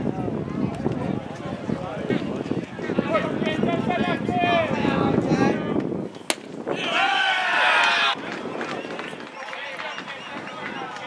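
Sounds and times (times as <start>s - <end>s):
baseball popping into mitt: 6.2s - 6.6s
loud drawn-out shout: 6.7s - 8.2s.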